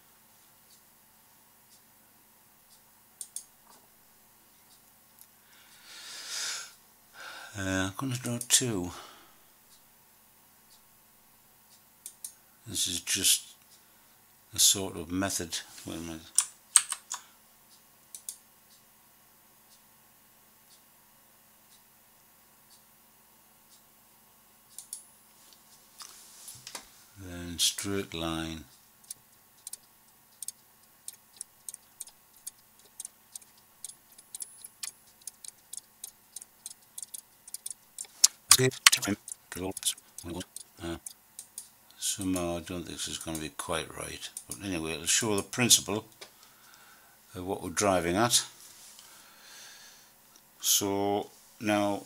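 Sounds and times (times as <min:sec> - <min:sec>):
computer keys clicking: 0:03.2 - 0:03.5, 0:16.3 - 0:17.2, 0:18.1 - 0:18.4, 0:24.7 - 0:25.0, 0:29.0 - 0:42.5
man speaking: 0:07.6 - 0:09.1, 0:12.7 - 0:13.6, 0:14.6 - 0:16.4, 0:27.2 - 0:28.7, 0:38.2 - 0:41.1, 0:42.0 - 0:46.1, 0:47.3 - 0:48.6, 0:50.6 - 0:52.0.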